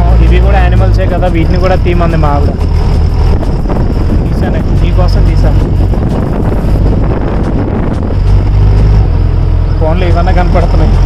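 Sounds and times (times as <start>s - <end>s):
vehicle engine rumble: 0.0s - 11.0s
wind rushing over microphone: 0.0s - 11.0s.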